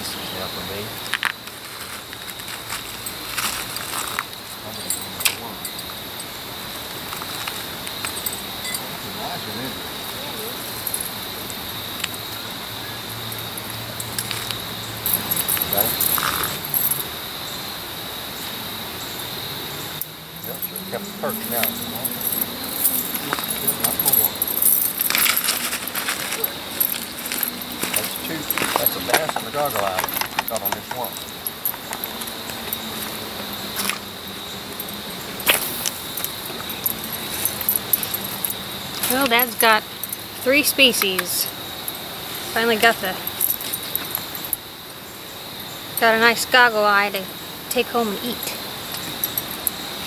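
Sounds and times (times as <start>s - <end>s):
steady high-pitched whine: 0.0s - 50.0s
metal fishing tackle clinking: 2.7s - 6.4s, 7.0s - 9.0s, 10.4s - 11.3s, 13.2s - 17.2s, 19.9s - 44.7s, 47.7s - 49.9s.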